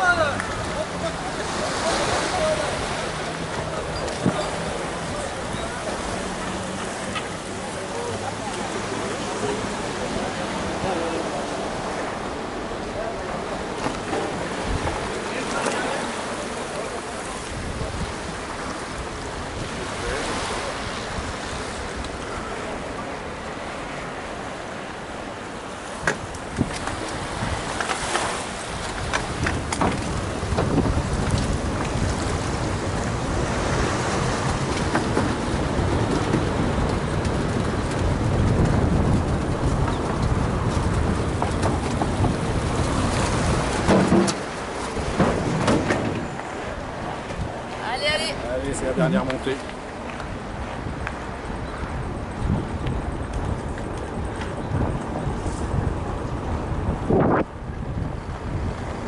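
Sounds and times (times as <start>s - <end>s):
tyres rumbling over walkway deck: 0.0s - 59.0s
wind buffeting microphone: 0.0s - 59.0s
bike tyre noise: 26.4s - 47.5s.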